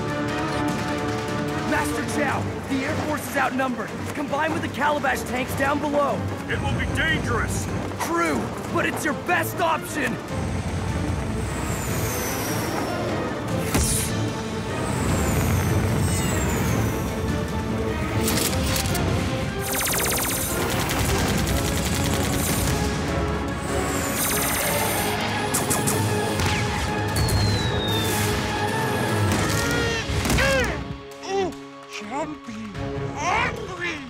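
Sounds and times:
action music: 0.0s - 34.0s
falling whistles: 11.5s - 17.3s, 23.7s - 29.4s
machine-gun fire: 19.6s - 23.0s.

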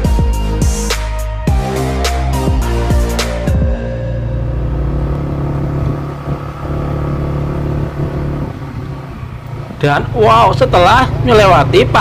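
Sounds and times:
vehicle engine running: 1.6s - 12.0s.

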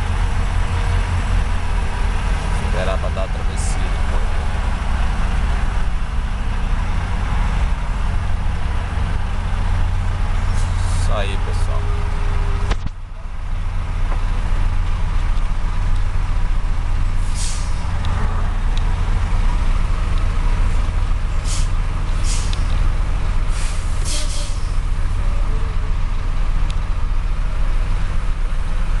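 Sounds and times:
low engine rumble: 0.0s - 29.0s
short air hisses: 17.2s - 17.8s, 21.4s - 22.7s, 23.5s - 24.7s.

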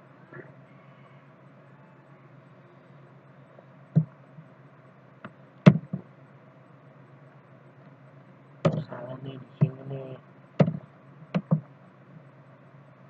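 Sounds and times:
steady low hum: 0.0s - 13.0s
sharp clicks and knocks: 3.9s - 4.2s, 5.2s - 6.1s, 8.7s - 8.9s, 10.6s - 11.7s.

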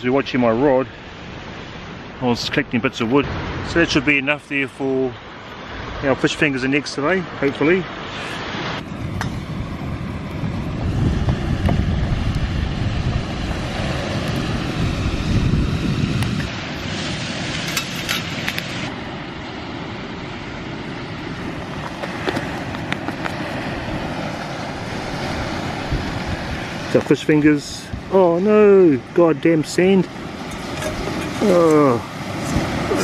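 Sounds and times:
steady rushing noise: 0.0s - 33.0s
wind buffeting microphone: 8.8s - 33.0s.

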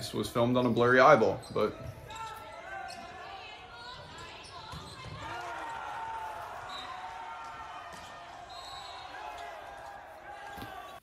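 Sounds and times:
sneakers squeaking on court: 0.2s - 5.5s, 10.4s - 11.0s.

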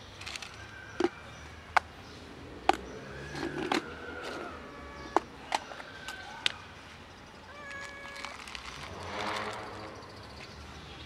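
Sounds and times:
cat meowing: 4.4s - 5.3s, 7.5s - 8.4s.

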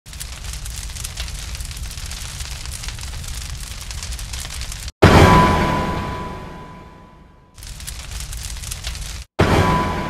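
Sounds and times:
fire crackling: 0.1s - 5.0s, 7.6s - 9.3s.

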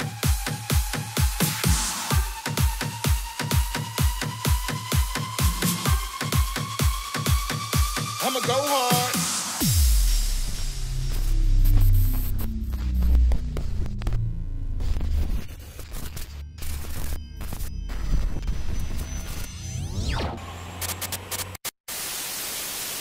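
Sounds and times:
glitchy stutters: 9.6s - 21.7s
deep bass drone with falling tones: 9.7s - 21.5s
static hiss: 21.9s - 23.0s.

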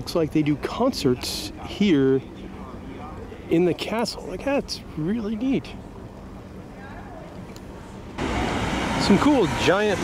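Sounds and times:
city street traffic: 0.0s - 10.0s
faint outdoor hum: 0.0s - 10.0s.

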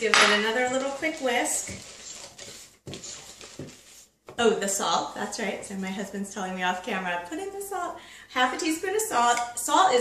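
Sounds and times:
whisk swishing through batter: 0.6s - 4.2s.

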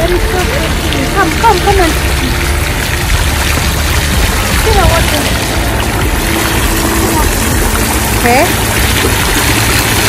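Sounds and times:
fountain jets splashing into pool: 0.0s - 10.0s
heavy low rumble: 0.0s - 10.0s.

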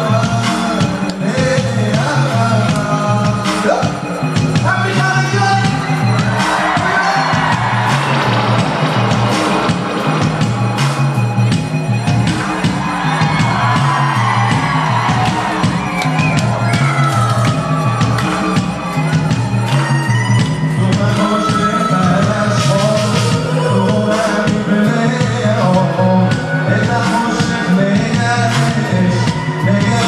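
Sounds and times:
reggae band playing: 0.0s - 30.0s
crowd whooping and cheering: 4.3s - 30.0s.

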